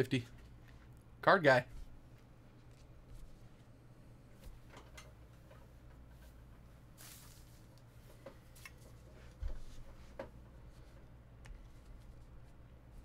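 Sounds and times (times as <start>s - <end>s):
short rustle: 6.9s - 7.8s.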